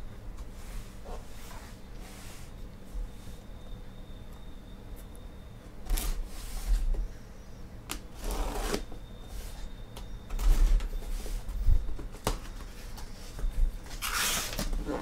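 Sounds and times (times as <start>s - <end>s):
knife slicing packing tape: 14.0s - 14.7s.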